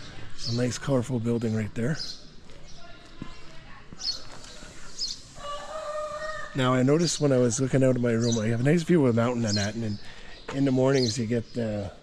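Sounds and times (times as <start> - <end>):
quiet street ambience: 0.0 - 12.0
rooster crowing: 5.4 - 6.6.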